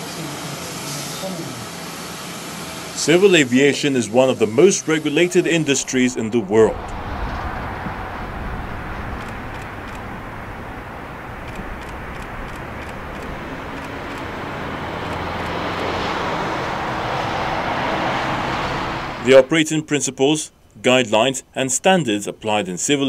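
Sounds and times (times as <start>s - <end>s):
jet engine rushing: 3.0s - 19.4s.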